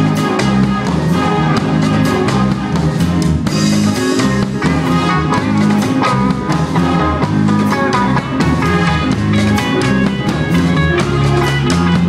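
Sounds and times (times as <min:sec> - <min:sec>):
bass notes: 0:00.0 - 0:12.0
blues guitar: 0:00.0 - 0:12.0
drum kit beat: 0:00.0 - 0:12.0.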